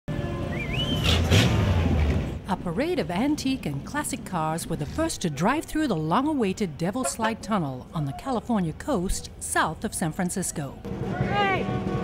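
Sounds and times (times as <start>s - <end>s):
wavering whistle-like tone: 0.4s - 1.2s.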